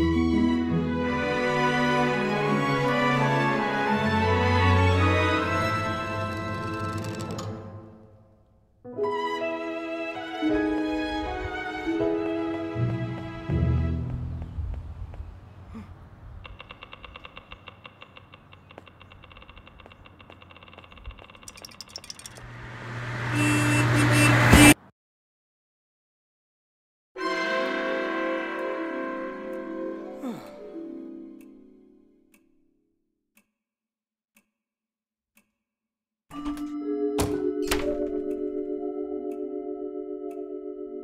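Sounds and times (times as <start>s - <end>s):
music: 0.0s - 14.4s, 27.2s - 32.4s, 36.3s - 41.0s
clockwork mechanism clicking: 16.5s - 22.5s.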